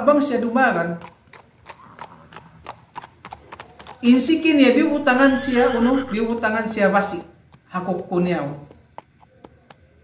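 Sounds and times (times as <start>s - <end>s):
horse hoofbeats clip-clop: 1.0s - 10.0s.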